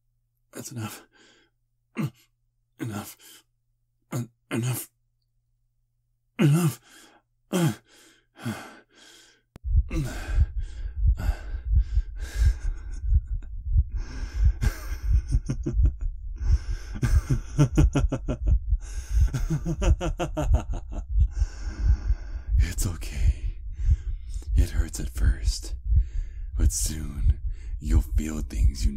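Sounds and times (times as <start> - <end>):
man breathing heavily: 6.7 - 17.9, 18.7 - 20.0, 20.8 - 26.6, 27.4 - 27.8
deep pulsing rumble: 9.6 - 28.9.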